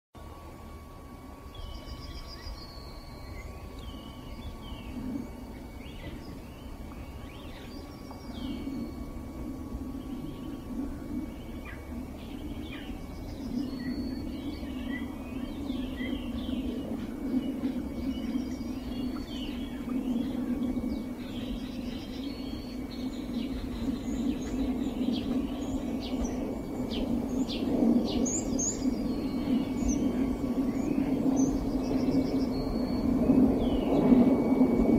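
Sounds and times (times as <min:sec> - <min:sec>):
low steady rumble: 0:00.2 - 0:34.9
birds chirping and singing: 0:01.5 - 0:09.1, 0:11.3 - 0:34.2.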